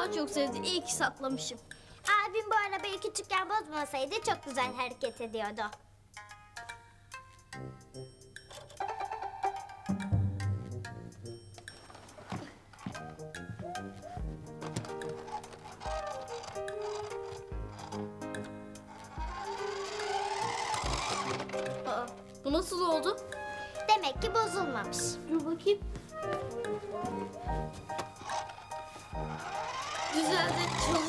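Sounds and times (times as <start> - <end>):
background music with held notes: 0.0 - 31.0.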